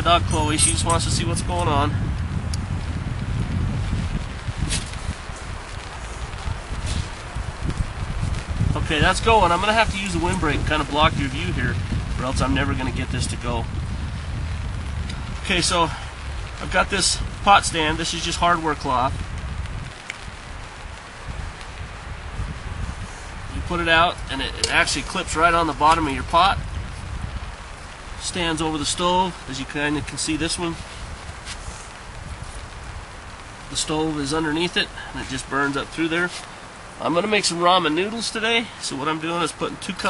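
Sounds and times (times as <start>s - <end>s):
light rain on a tarp: 0.0s - 40.0s
wind rumbling on microphone: 0.0s - 40.0s
rustling: 3.8s - 11.0s, 17.9s - 38.3s.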